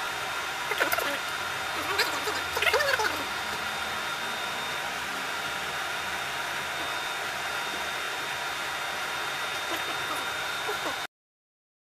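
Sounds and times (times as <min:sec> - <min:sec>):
fan whooshing: 0:00.0 - 0:11.1.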